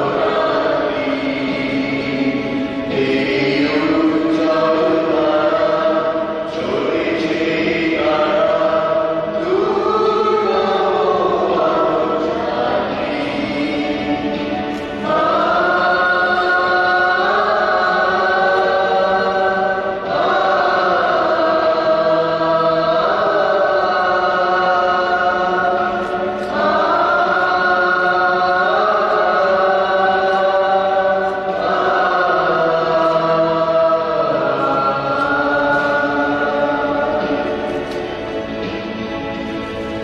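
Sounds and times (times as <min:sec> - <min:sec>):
choir singing a hymn: 0:00.0 - 0:40.0.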